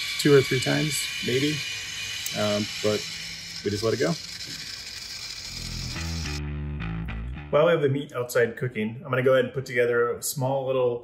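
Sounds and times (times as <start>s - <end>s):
rotisserie motor whirring: 0.0s - 6.4s
music with low bass: 5.8s - 7.8s.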